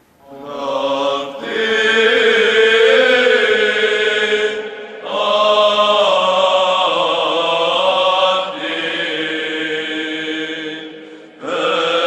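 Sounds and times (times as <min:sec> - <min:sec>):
voices chanting long held notes: 0:00.2 - 0:12.0.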